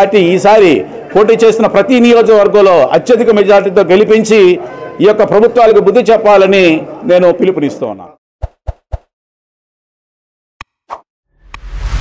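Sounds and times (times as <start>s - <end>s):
whoosh: 11.3s - 12.0s.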